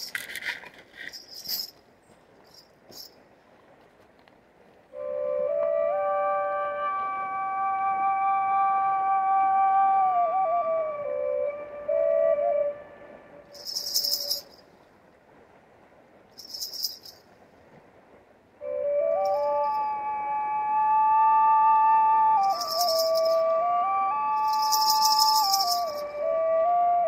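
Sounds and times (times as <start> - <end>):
rattle shakes: 0.0 - 1.8, 2.4 - 3.2, 13.5 - 14.7, 16.4 - 17.3, 22.4 - 23.4, 24.4 - 26.1
double flute melody: 4.9 - 14.6, 18.5 - 27.0
flute drone: 4.9 - 14.6, 18.5 - 27.0.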